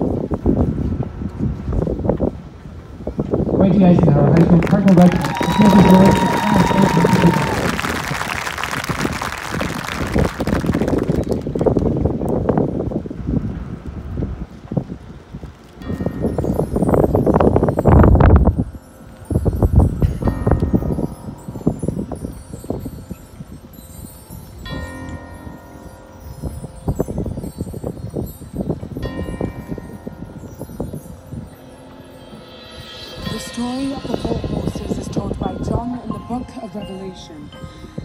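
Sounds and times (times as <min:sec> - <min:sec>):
wind buffeting microphone: 0:00.0 - 0:38.0
crowd applause: 0:04.4 - 0:11.8
metallic bell-like chord ringing: 0:15.9 - 0:38.0
light metallic tapping and shimmering: 0:30.4 - 0:37.8.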